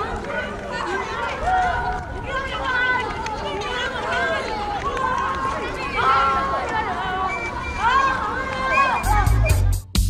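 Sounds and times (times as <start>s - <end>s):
children shouting and calling: 0.0s - 9.8s.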